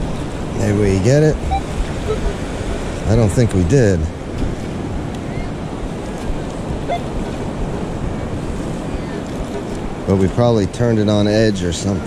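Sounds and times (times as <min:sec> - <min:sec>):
ocean surf over wet sand: 0:00.0 - 0:12.0
wind on microphone: 0:00.0 - 0:12.0.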